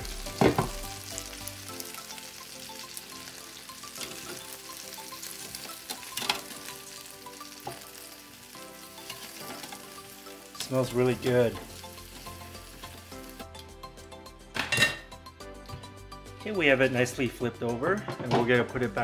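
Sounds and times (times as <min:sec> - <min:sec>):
chicken wings sizzling: 0:00.0 - 0:13.6.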